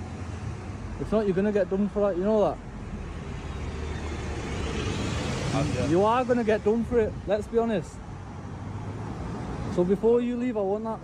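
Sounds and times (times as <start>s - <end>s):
road traffic rushing: 0.0s - 11.0s.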